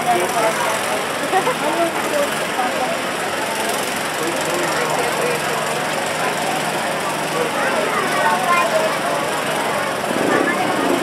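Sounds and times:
crowd chatter: 0.0 - 11.0
small engine running: 0.0 - 11.0.

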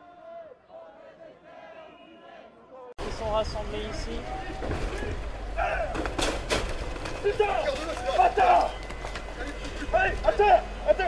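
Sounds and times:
men shouting: 4.2 - 6.0, 7.2 - 11.0.

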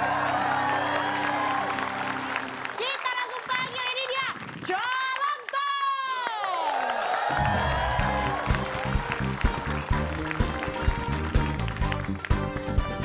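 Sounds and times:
band music with bass and beat: 7.1 - 13.0.

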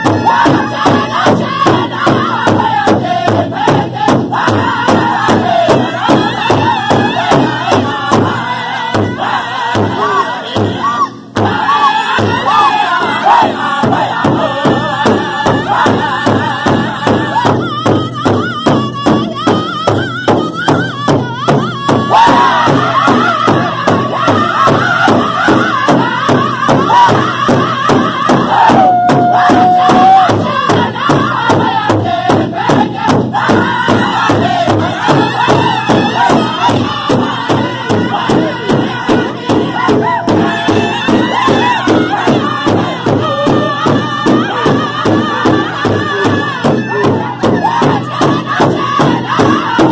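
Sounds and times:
group singing: 0.0 - 49.9
large drum beaten with drumsticks: 0.0 - 49.9.

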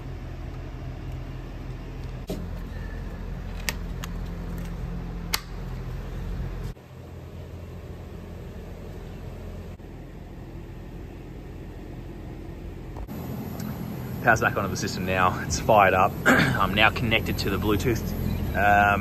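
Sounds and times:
low machinery hum: 0.0 - 19.0.

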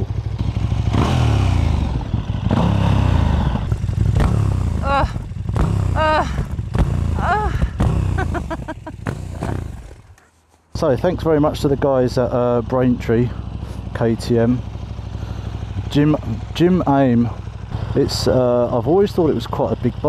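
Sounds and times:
motorcycle engine idling: 0.0 - 20.0
knocks and scrapes: 8.9 - 10.8.

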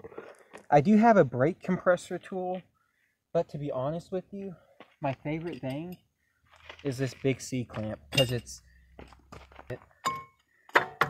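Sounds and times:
metal clamp clinking on caliper: 8.1 - 8.5.

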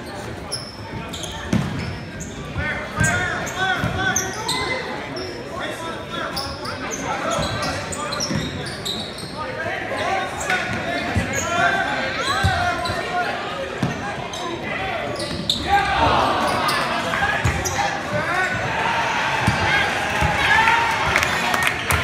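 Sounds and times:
sneaker squeaks: 0.0 - 5.4, 6.2 - 18.6
voices of players and spectators: 0.0 - 22.0.

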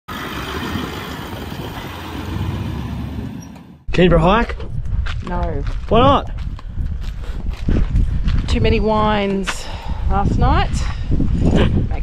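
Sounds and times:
motor vehicle rumble: 0.1 - 3.9.

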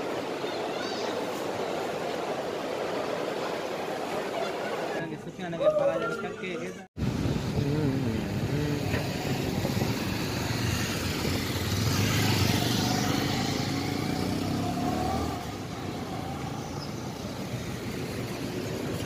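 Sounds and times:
cars passing: 7.2 - 19.0
motorcycles passing: 7.4 - 19.0.

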